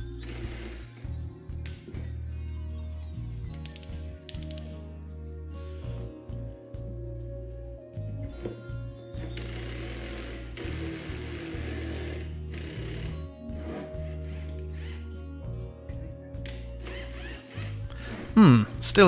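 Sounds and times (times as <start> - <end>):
cordless drill spinning hole saw: 0.0 - 1.1, 9.2 - 15.3, 16.8 - 18.2
background music: 0.0 - 19.0.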